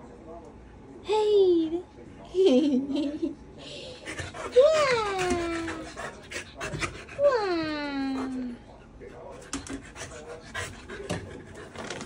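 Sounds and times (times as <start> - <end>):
puppy panting: 4.0 - 12.0.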